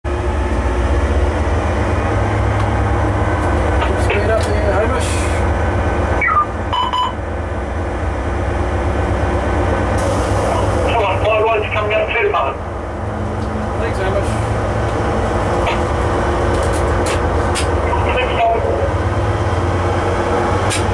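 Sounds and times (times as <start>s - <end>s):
locomotive engine drone: 0.0s - 20.9s
muffled voices: 3.8s - 5.4s, 10.4s - 12.6s, 16.6s - 19.0s
short electronic beep: 6.2s - 7.2s.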